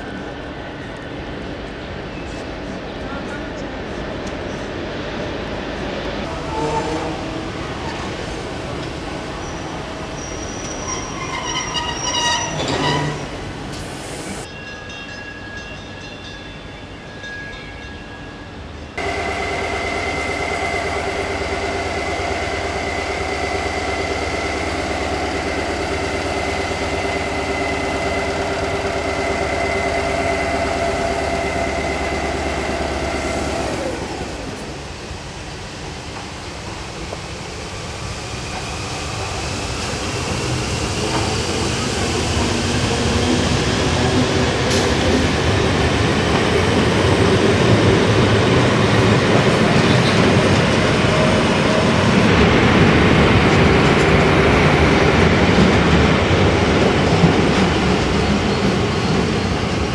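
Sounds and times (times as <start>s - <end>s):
train passing rumble: 0.0s - 59.9s.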